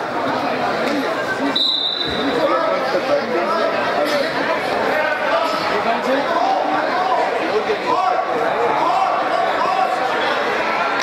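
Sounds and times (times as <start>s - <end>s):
many voices chattering: 0.0s - 11.0s.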